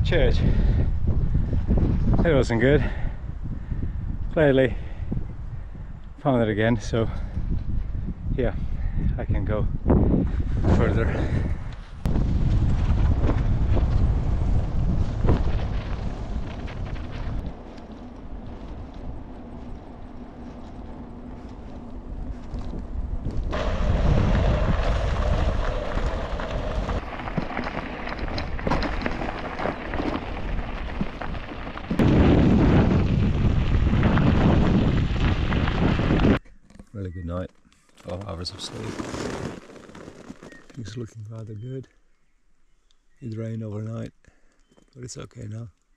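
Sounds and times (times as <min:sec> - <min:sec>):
wind buffeting microphone: 0:00.0 - 0:36.4
bike road rumble: 0:00.0 - 0:44.9.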